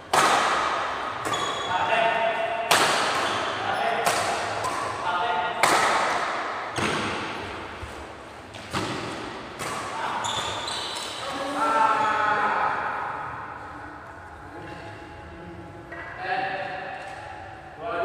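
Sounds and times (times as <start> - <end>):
rackets striking shuttlecock: 2.6 - 5.0, 5.6 - 7.5, 8.5 - 11.2.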